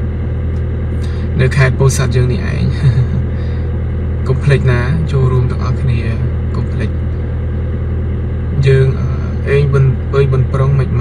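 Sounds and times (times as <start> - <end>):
car engine humming inside cabin: 0.0 - 11.0
man speaking: 1.0 - 3.4, 4.2 - 7.0, 8.5 - 11.0.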